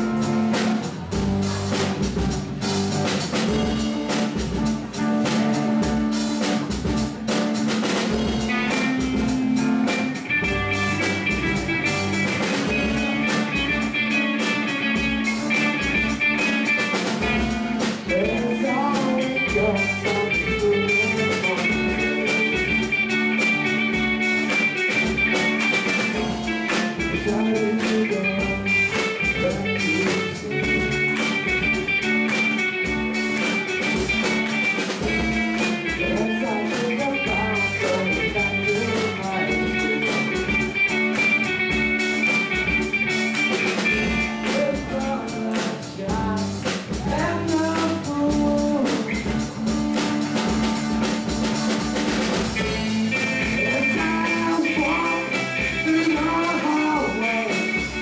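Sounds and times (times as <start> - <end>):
live rock band playing: 0.0 - 58.0
sliding guitar line: 0.0 - 58.0.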